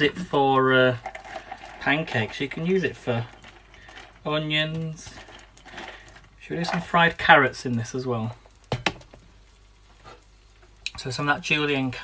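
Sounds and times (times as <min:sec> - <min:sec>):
potatoes sizzling in frying pan: 0:00.0 - 0:12.0.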